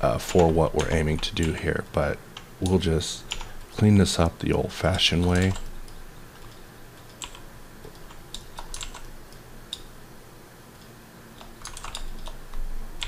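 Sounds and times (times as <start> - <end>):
keyboard keys clicking: 2.4 - 3.6, 4.9 - 9.9, 10.8 - 13.0.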